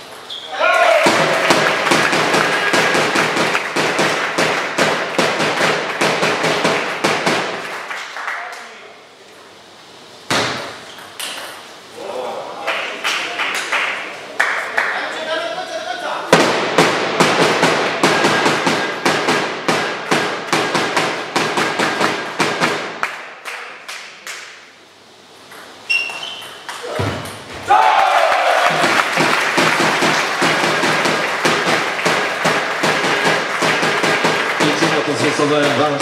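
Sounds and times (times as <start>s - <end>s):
short shout: 0.5s - 1.4s
audience clapping: 1.1s - 8.9s, 12.6s - 15.2s, 22.6s - 24.4s, 27.8s - 36.0s.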